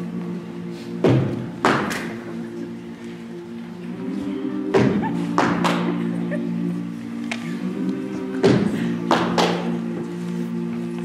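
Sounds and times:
a cappella vocal chords: 0.0s - 11.0s.

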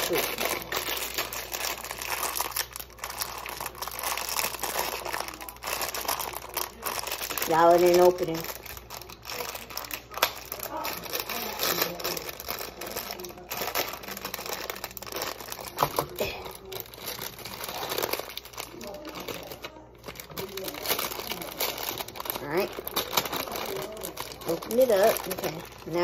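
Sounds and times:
packaging crinkling: 0.0s - 26.0s.

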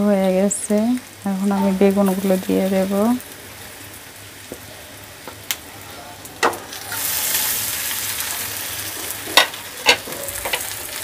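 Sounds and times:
slices frying in oil: 0.0s - 11.0s.

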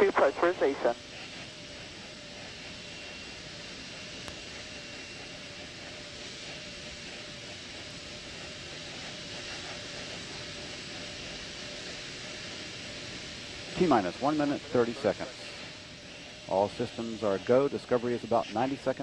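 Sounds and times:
faint steady whine: 0.0s - 19.0s.

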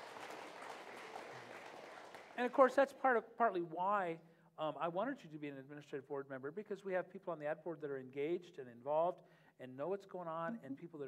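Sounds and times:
audience applause: 0.0s - 2.6s.

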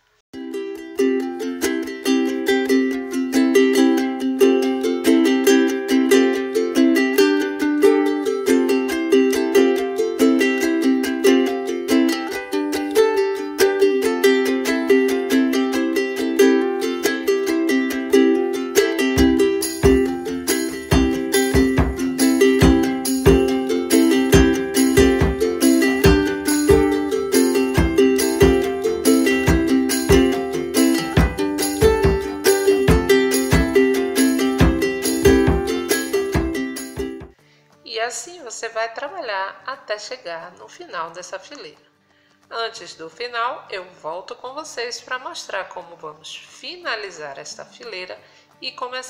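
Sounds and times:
bright tune of quick notes: 0.4s - 37.4s
low beat: 18.1s - 37.3s.

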